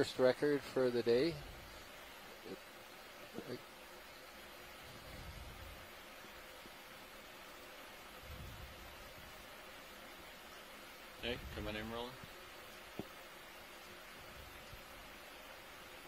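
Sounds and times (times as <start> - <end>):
faint steady hiss: 0.0 - 16.0.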